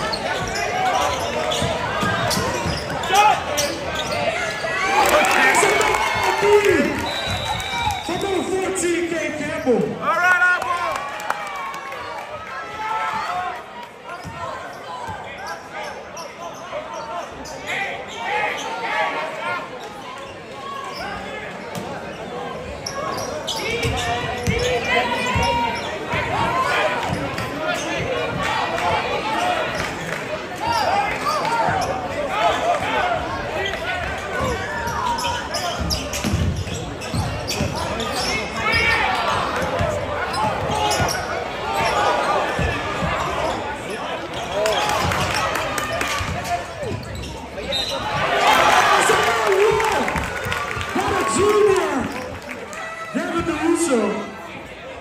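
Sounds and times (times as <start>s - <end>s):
basketball bouncing on court: 0.2s - 4.6s, 23.8s - 28.4s, 34.4s - 43.5s
people talking: 53.1s - 54.4s.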